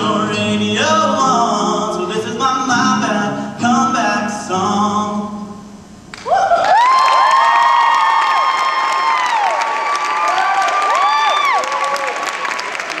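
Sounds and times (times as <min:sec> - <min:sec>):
audience clapping: 0:06.1 - 0:13.0
high-pitched screams and whoops: 0:06.2 - 0:12.3.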